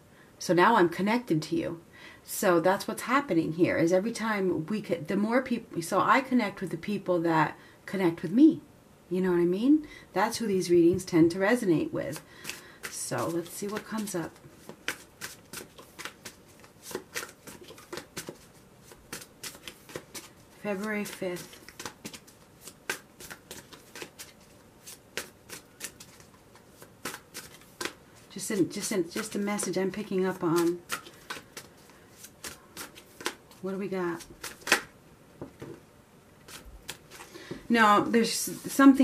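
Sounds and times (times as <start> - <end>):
cards being shuffled: 12.1 - 34.9, 36.4 - 37.6.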